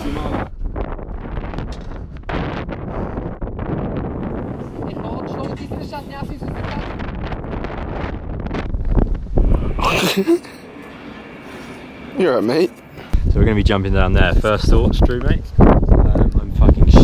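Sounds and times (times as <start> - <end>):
wind buffeting microphone: 0.0 - 10.0, 13.0 - 17.0.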